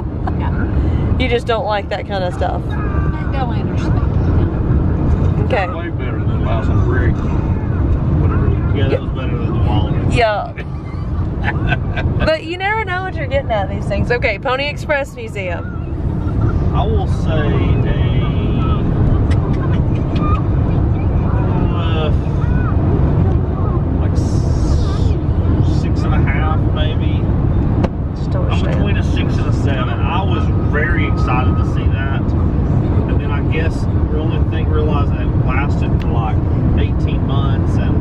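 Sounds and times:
faint voices: 0:00.0 - 0:27.4, 0:28.0 - 0:38.0
car cabin road rumble: 0:00.0 - 0:38.0.

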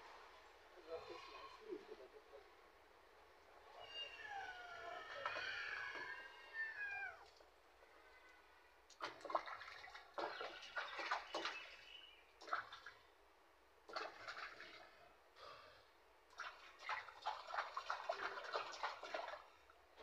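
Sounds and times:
kitten meowing: 0:03.8 - 0:07.2
water splashing in a tub: 0:08.9 - 0:13.2, 0:13.8 - 0:15.1, 0:16.3 - 0:20.0.

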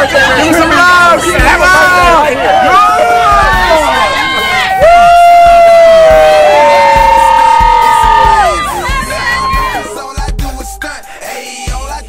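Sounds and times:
fans shouting cheers: 0:00.0 - 0:10.1
music beat: 0:00.4 - 0:12.0.

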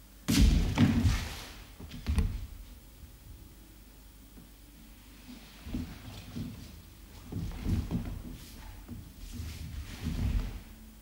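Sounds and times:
scuffle on floor: 0:05.0 - 0:10.8.

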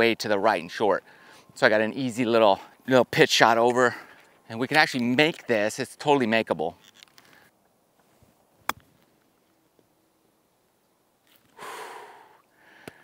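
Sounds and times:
breathy exhale: 0:11.6 - 0:13.0.

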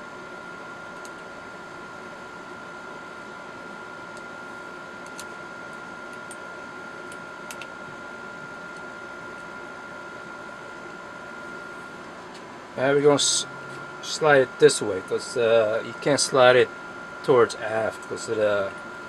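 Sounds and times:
faint high whine: 0:00.0 - 0:19.0.

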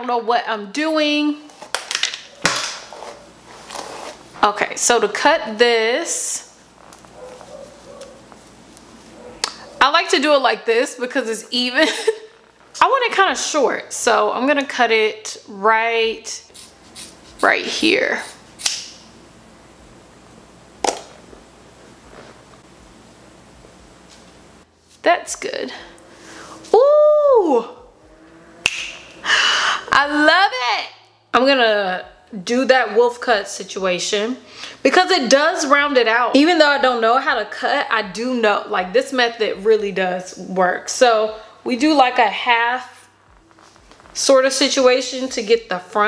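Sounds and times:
brush dragged through wig: 0:02.9 - 0:04.3, 0:21.8 - 0:22.6
scissors snipping hair: 0:18.2 - 0:19.0
sharp click: 0:18.6 - 0:19.0.

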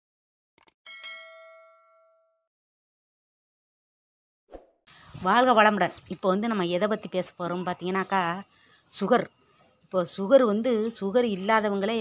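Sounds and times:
notification bell ding: 0:00.9 - 0:02.4.

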